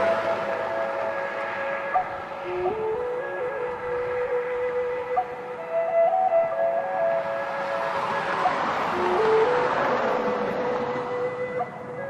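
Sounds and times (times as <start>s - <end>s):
highway traffic passing: 0.0s - 12.0s
slow flute melody: 0.0s - 12.0s.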